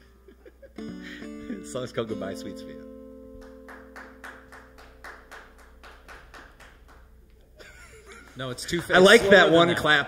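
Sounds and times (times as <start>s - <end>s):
guitar chord ringing: 0.0s - 7.4s
faint hand clapping: 3.4s - 7.4s.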